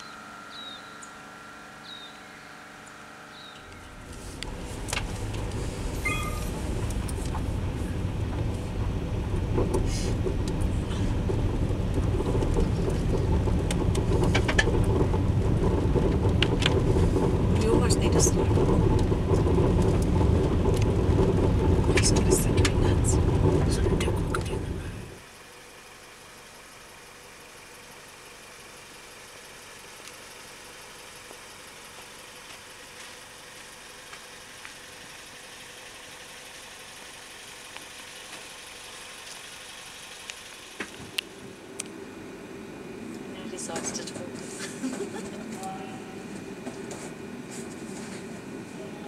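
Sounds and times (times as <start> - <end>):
road and engine rumble inside car: 0.0 - 49.0.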